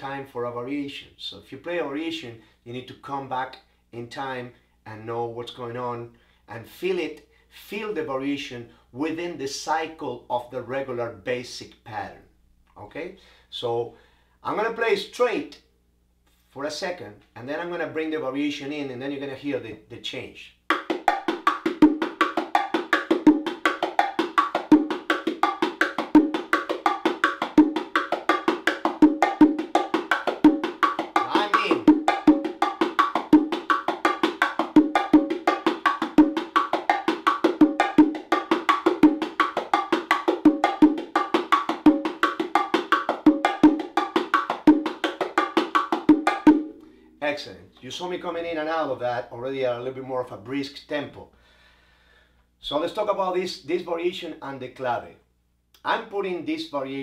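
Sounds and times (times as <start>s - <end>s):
bongo drums played by hand: 20.7s - 47.2s.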